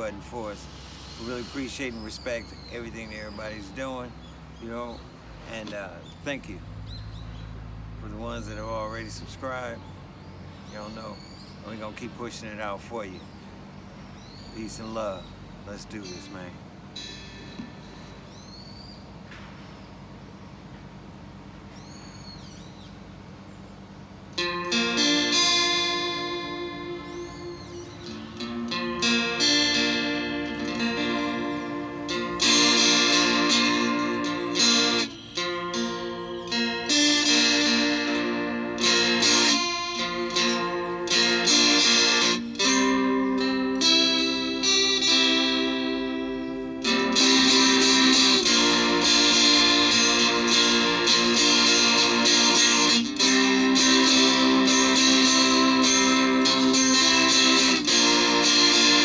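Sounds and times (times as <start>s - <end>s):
fingerstyle blues guitar: 4.6s - 6.5s, 24.4s - 59.0s.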